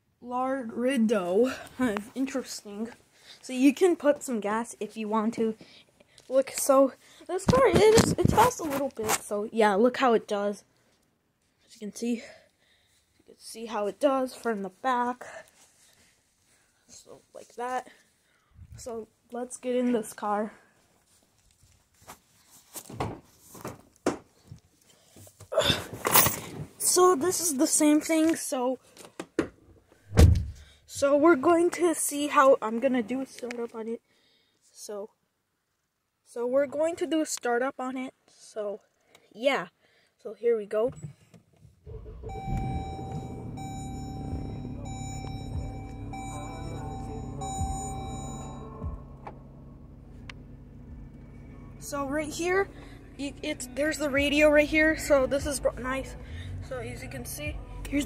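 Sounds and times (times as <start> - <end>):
loud bump: 30.1 - 30.6, 41.9 - 46.0
car engine starting and idling: 41.9 - 58.0
dashboard warning chime: 42.0 - 50.8.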